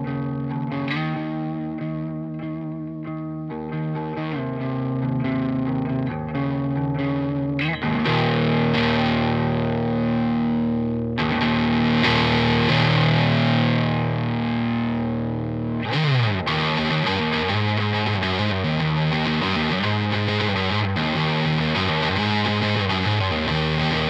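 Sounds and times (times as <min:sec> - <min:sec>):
distorted electric guitar chords: 0:00.0 - 0:24.0.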